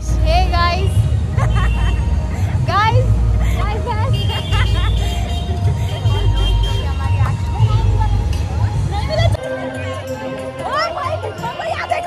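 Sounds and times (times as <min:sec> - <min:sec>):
street traffic rumble: 0:00.0 - 0:12.0
women chatting and laughing: 0:00.0 - 0:12.0.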